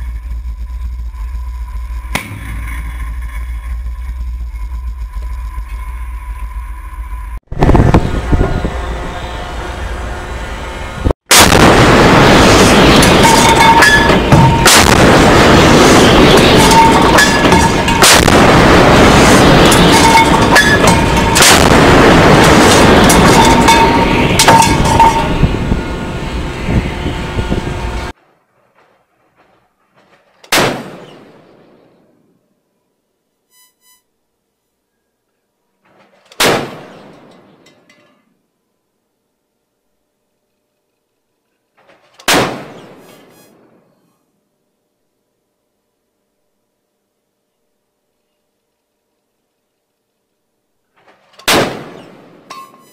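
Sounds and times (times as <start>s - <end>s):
loud rushing noise: 2.4s - 28.2s
rumble after gunshot: 11.3s - 13.0s, 14.3s - 16.8s, 17.6s - 20.2s, 21.3s - 23.6s, 41.8s - 43.0s
deck gun blast: 11.3s - 25.1s, 30.5s - 31.8s, 35.9s - 37.1s, 42.2s - 43.0s, 51.4s - 52.5s.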